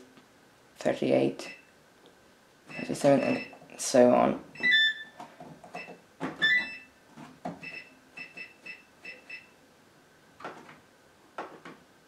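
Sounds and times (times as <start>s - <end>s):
washing machine control panel beeps: 2.7s - 3.6s, 4.6s - 5.2s, 5.8s - 6.9s, 7.6s - 9.6s.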